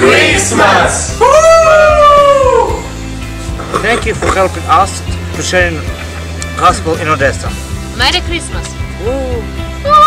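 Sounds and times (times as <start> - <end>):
high voice cheering: 9.8 - 10.0.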